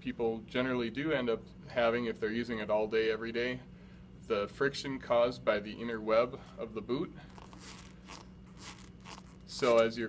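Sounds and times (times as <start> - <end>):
rubber boot crinkling: 7.3 - 10.0.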